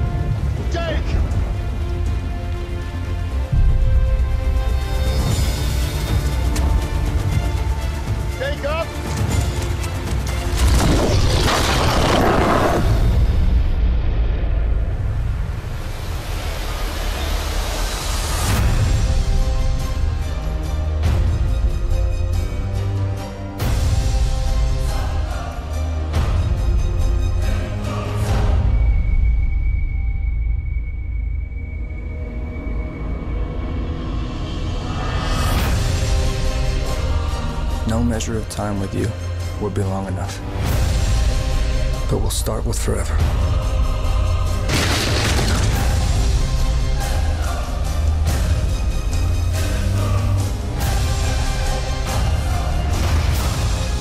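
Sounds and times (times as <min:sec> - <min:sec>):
trailer music: 0:00.0 - 0:54.0.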